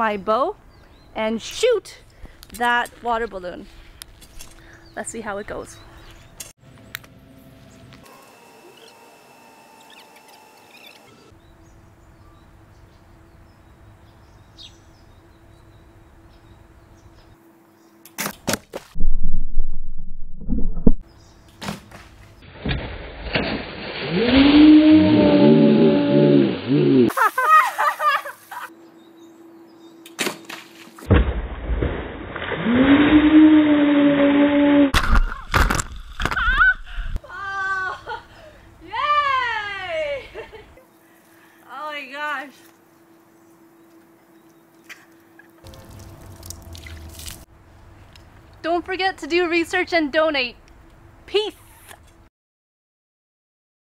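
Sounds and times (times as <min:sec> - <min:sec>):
water crashing down: 0:23.3 - 0:27.5.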